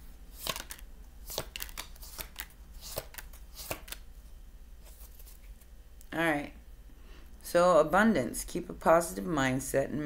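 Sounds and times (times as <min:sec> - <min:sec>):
cards being shuffled: 0:00.3 - 0:04.1, 0:04.8 - 0:05.7.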